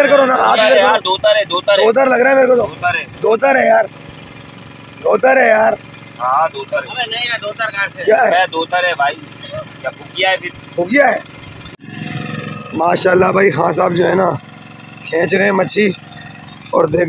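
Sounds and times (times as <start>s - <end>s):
men talking: 0.0s - 4.0s, 5.0s - 11.3s, 12.7s - 14.4s, 15.0s - 16.0s, 16.7s - 17.0s.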